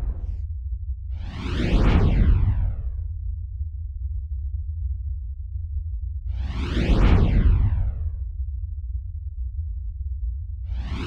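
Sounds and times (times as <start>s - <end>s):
deep low rumble: 0.0s - 11.0s
whoosh sound effects: 10.8s - 11.0s.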